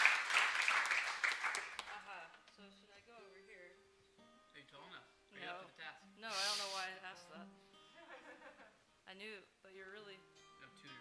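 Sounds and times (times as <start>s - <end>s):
off-mic talking: 6.2s - 7.0s.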